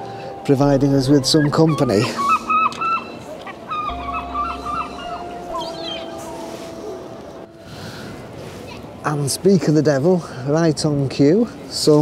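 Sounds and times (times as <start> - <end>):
gulls calling: 0.0 - 9.0.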